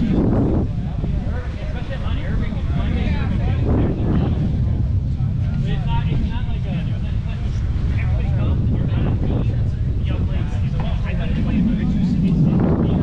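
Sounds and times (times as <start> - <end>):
distant voices talking: 0.0 - 13.0
wind buffeting microphone: 0.0 - 13.0.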